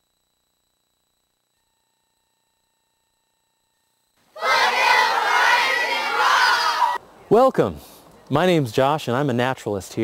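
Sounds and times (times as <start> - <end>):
children shouting and cheering: 4.4 - 7.0.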